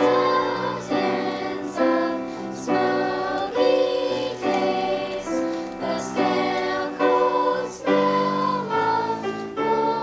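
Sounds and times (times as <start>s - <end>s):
choir singing in harmony: 0.0s - 10.0s
piano accompaniment: 0.0s - 10.0s.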